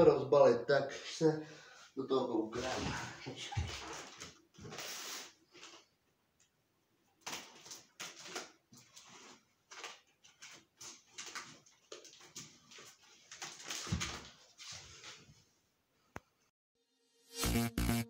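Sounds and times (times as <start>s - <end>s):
scissors cutting tape and cardboard: 7.2s - 8.6s.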